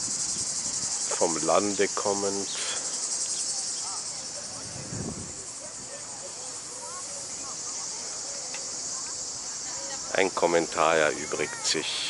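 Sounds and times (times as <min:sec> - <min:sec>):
cicadas buzzing: 0:00.0 - 0:12.0.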